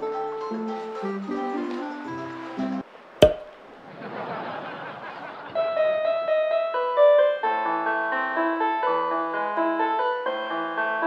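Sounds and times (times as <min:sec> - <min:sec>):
sharp hit with ringing tone: 0:03.2 - 0:03.6.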